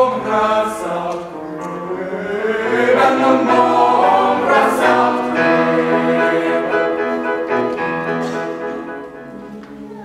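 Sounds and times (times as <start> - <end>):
mixed-voice choir singing: 0.0 - 8.7.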